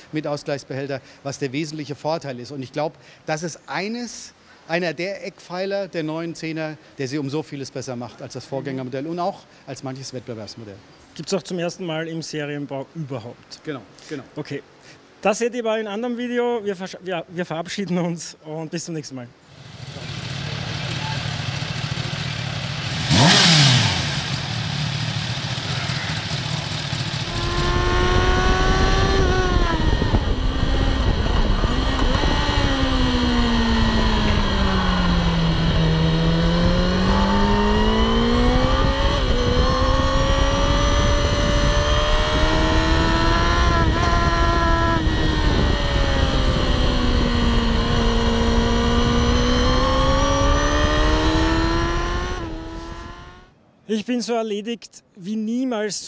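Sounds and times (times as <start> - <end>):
motorcycle engine at speed: 19.5 - 53.5
motorcycle passing by fast: 19.5 - 53.5.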